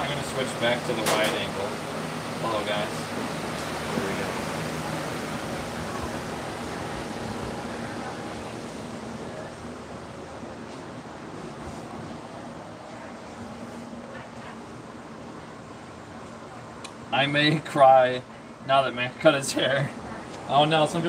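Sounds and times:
electric fan rushing air: 0.0s - 21.0s.

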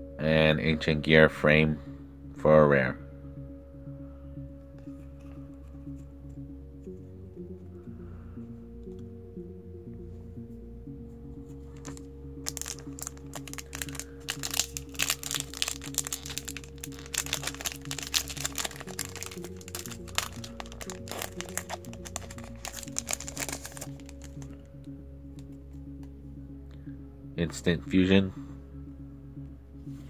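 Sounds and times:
background music: 0.0s - 30.0s
foil wrapper crinkling and tearing: 11.8s - 24.5s.

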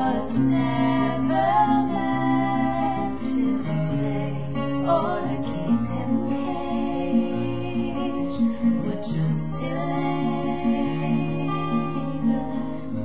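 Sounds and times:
acoustic guitar chords: 0.0s - 13.0s.

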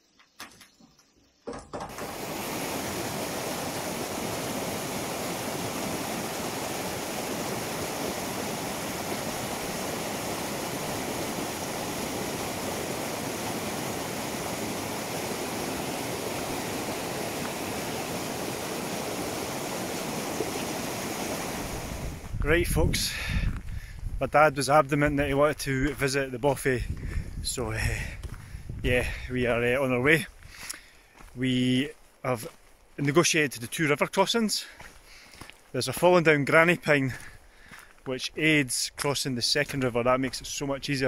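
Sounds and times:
river rushing over rocks: 1.9s - 22.3s.

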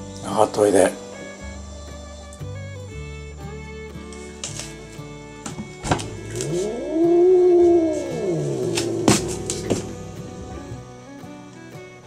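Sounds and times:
cat meowing: 6.0s - 10.8s.

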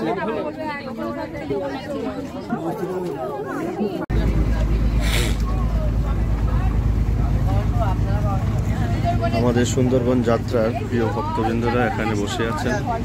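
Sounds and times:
group of people chattering: 0.0s - 13.0s
people talking: 0.0s - 13.0s
boat engine droning: 4.1s - 13.0s.

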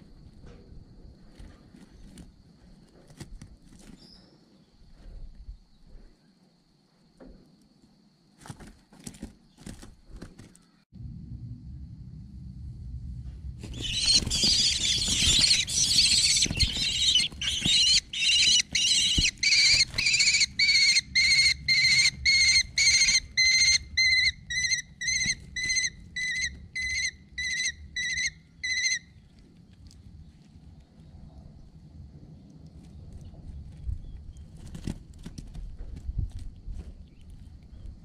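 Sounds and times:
wings fluttering: 1.2s - 5.9s, 8.4s - 10.8s, 13.5s - 31.0s, 32.8s - 38.0s
chicks begging screams: 13.7s - 29.0s.

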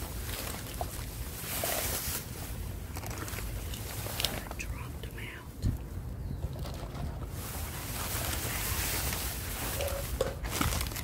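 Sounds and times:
plastic bags rustling: 0.0s - 4.6s, 6.6s - 11.0s
soft whispering: 4.2s - 5.6s, 8.2s - 9.1s.

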